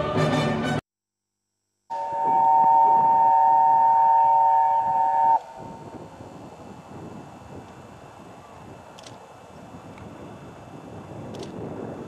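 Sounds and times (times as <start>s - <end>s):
steam locomotive whistle: 1.9s - 6.0s.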